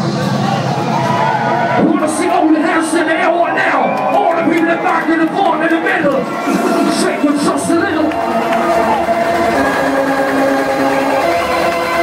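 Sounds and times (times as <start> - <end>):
sustained synth chords: 6.3 - 12.0.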